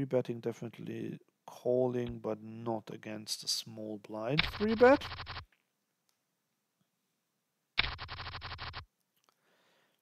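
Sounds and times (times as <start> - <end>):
rapid even patter: 4.4 - 5.4, 7.8 - 8.8.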